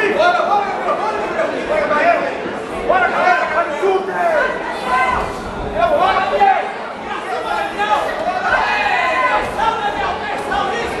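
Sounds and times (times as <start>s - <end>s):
crowd shouting in echoing hall: 0.0s - 11.0s.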